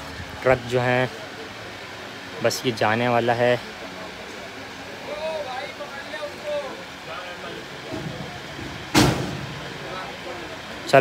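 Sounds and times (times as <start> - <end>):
metal bang on truck body: 8.0 - 9.6.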